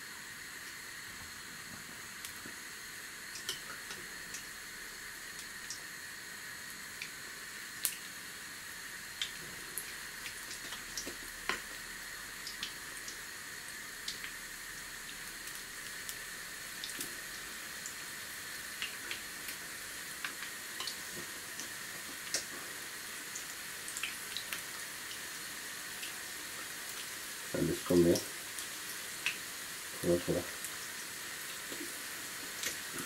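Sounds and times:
fritters sizzling in oil: 0.0s - 33.0s
oil popping and crackling: 9.2s - 13.2s.

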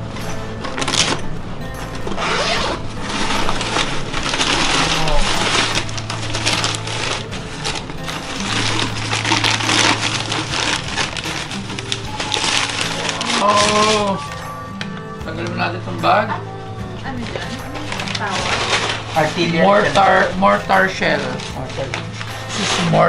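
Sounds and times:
background music with bass line: 0.0s - 23.0s
paper and cloth crackling rustle: 1.9s - 15.6s, 17.0s - 23.0s.

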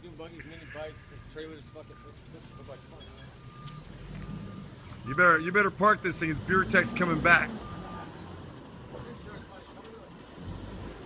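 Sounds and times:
faint street noise: 0.0s - 11.0s
garbage truck engine rumble: 0.0s - 11.0s.

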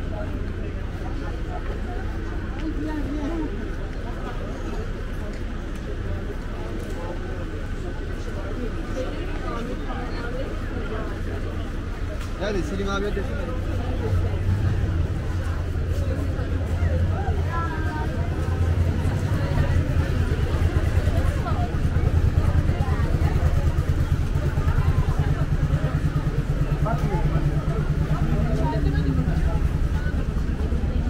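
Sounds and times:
passers-by talking: 0.0s - 31.0s.

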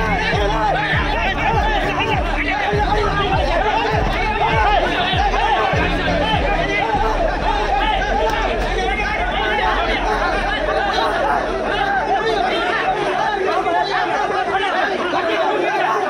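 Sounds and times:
background music with bass hits: 0.0s - 14.5s
men shouting and talking: 0.0s - 16.0s.

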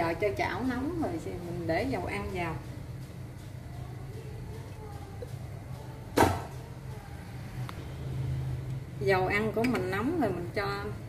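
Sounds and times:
stove humming: 0.0s - 11.0s.

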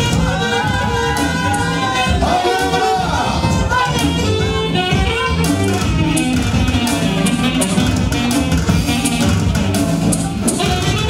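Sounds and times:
bass line: 0.0s - 11.0s
live band playing dance music: 0.0s - 11.0s
percussion beat: 0.0s - 11.0s
saxophone: 0.0s - 11.0s.

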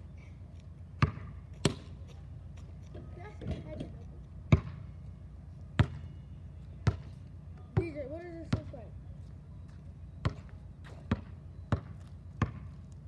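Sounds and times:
basketball bouncing on asphalt: 0.5s - 13.0s.

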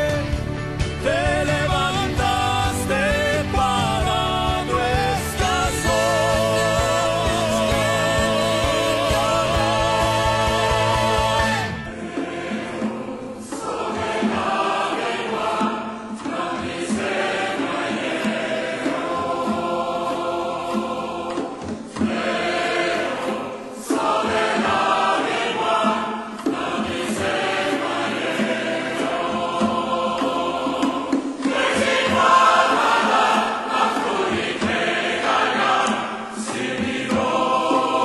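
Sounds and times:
choir singing: 1.0s - 38.0s.

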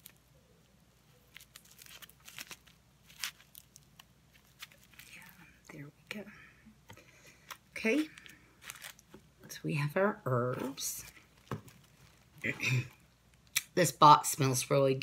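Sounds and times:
plastic bag crinkling: 1.0s - 5.9s, 7.4s - 9.4s, 10.8s - 13.0s.

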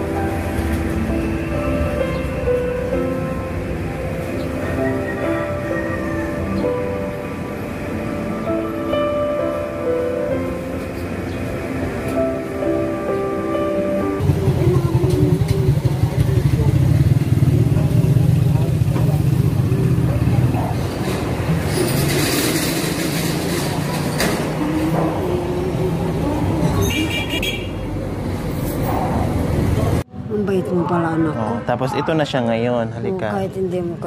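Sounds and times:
background music: 0.0s - 15.4s
traffic noise: 0.0s - 34.0s
vehicle engine running: 14.2s - 20.9s
voices: 14.2s - 21.5s.

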